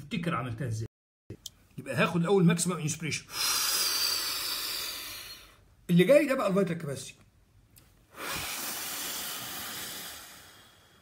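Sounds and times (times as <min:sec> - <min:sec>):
man blowing out breath: 0:03.3 - 0:05.7, 0:08.1 - 0:11.0.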